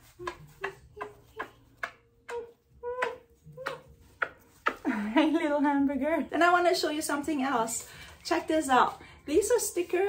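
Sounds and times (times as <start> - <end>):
person humming mm: 2.3 - 3.9.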